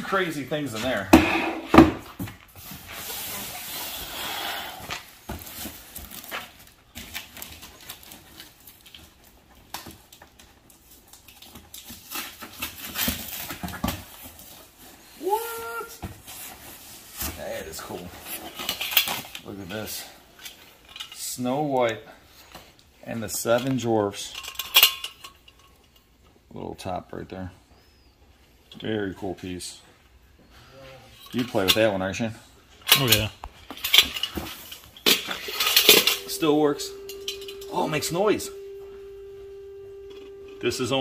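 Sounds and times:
knocks and clatters of items: 0:00.8 - 0:02.9, 0:11.2 - 0:14.7, 0:32.9 - 0:36.4
cardboard and packing rustling: 0:01.7 - 0:19.9.

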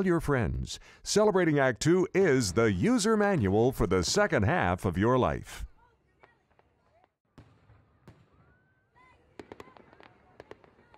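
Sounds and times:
firework crackling pops: 0:09.3 - 0:10.9.

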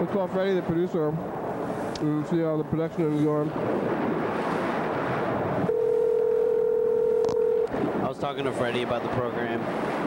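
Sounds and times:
telephone dial tone: 0:05.7 - 0:07.7
telephone line hiss: 0:05.7 - 0:07.7.

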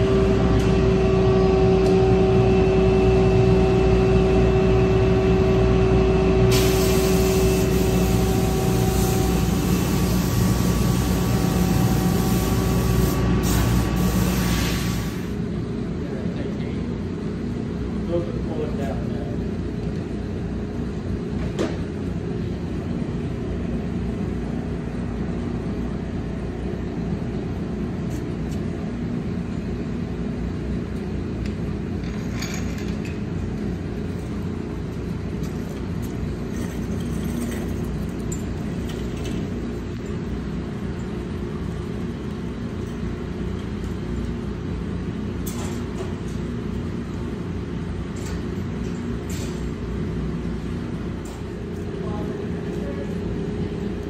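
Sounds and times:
low background hum: 0:00.0 - 0:54.0.

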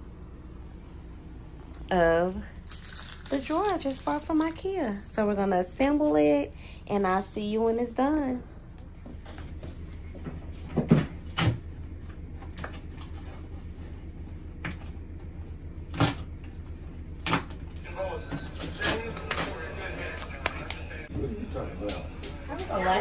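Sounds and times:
steady low hum: 0:00.0 - 0:23.0.

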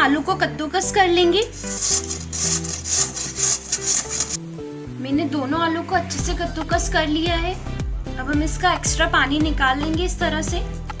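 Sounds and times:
potato grating rasping strokes: 0:01.5 - 0:04.4.

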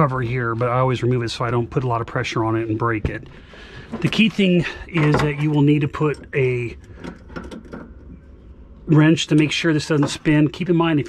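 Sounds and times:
man talking: 0:00.0 - 0:06.8, 0:08.9 - 0:11.0
low background noise: 0:00.0 - 0:11.0.

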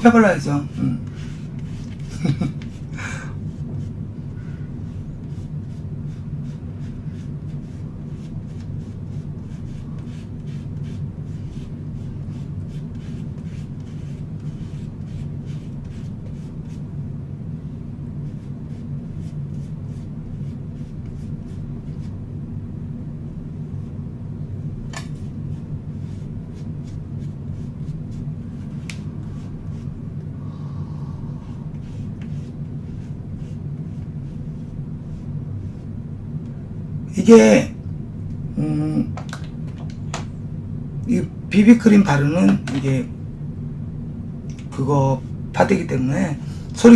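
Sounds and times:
steady low hum: 0:00.0 - 0:46.9
makeup puff swishing on skin: 0:31.0 - 0:34.2.

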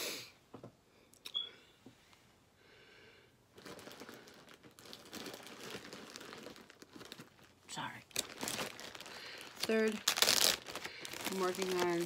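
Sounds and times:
plastic bag crinkling: 0:03.5 - 0:12.0.

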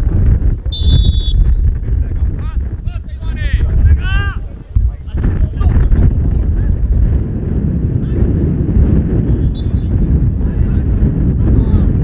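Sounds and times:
wind rumble on microphone: 0:00.0 - 0:12.0
referee whistle blast: 0:00.7 - 0:01.6, 0:09.4 - 0:09.9.

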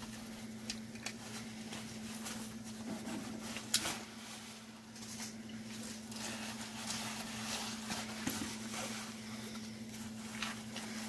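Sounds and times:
steady low hum: 0:00.0 - 0:11.0
airbag fabric rustling: 0:01.2 - 0:11.0.

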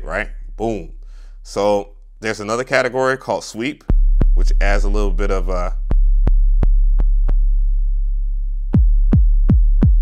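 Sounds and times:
synthesized bass drum boom: 0:03.9 - 0:07.8, 0:08.7 - 0:10.0.

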